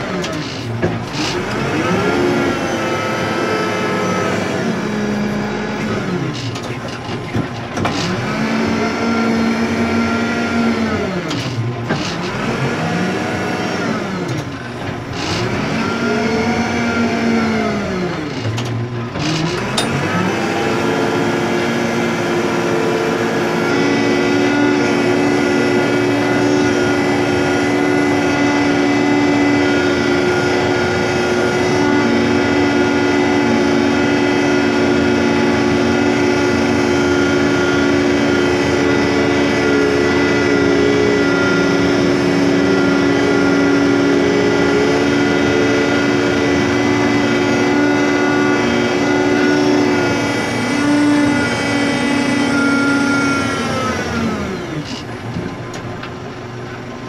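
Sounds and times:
diesel engine revving: 0.0 - 57.0.

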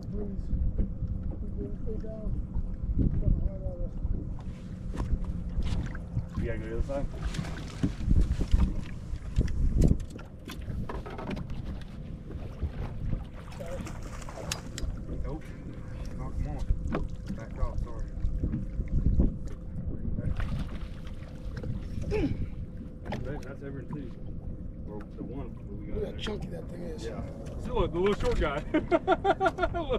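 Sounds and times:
wind rumbling on microphone: 0.0 - 29.9.

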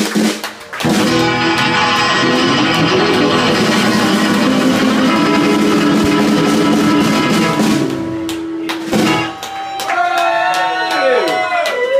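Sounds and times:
live band playing: 0.0 - 9.9.

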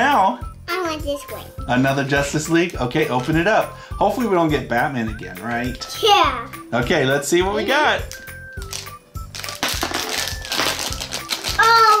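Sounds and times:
background music with beat: 0.0 - 12.0
foil bag crinkling: 8.0 - 12.0.

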